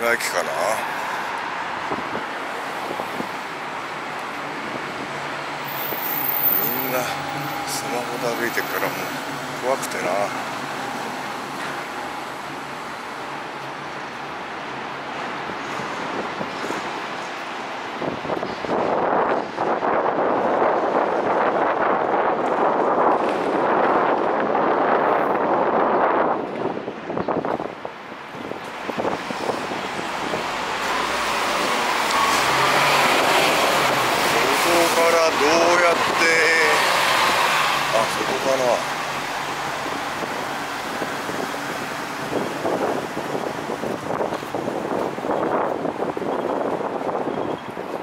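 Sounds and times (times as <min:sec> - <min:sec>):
road traffic passing: 0:00.0 - 0:48.0.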